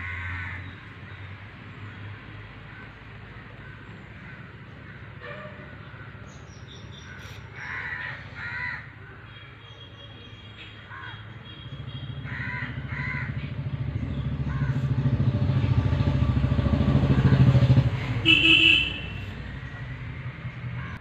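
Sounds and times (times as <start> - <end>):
crows cawing: 0.0 - 0.7, 3.6 - 6.3, 7.0 - 9.2, 10.9 - 11.2, 12.2 - 13.5, 14.5 - 14.9, 20.8 - 21.0
vehicle engine running: 11.4 - 21.0.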